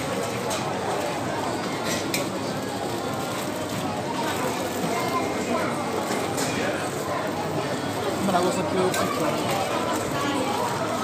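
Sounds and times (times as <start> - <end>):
restaurant background chatter: 0.0 - 11.0.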